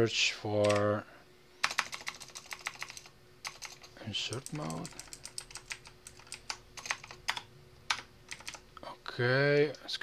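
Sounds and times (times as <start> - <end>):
computer keyboard typing: 0.6 - 0.9, 1.6 - 8.6.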